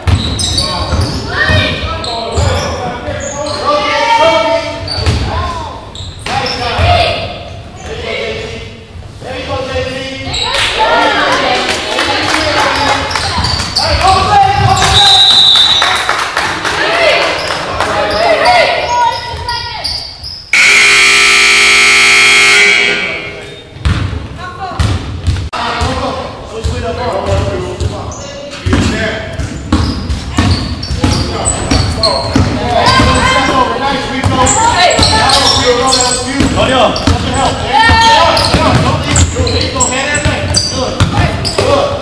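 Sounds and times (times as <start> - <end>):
voices echoing: 0.0 - 42.0
scoreboard horn: 20.6 - 23.6.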